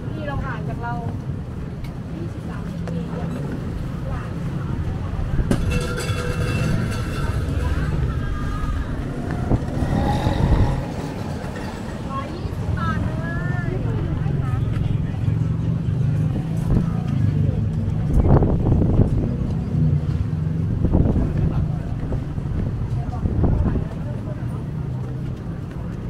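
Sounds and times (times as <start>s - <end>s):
passers-by talking: 0.0s - 26.0s
traffic rumble: 0.0s - 26.0s.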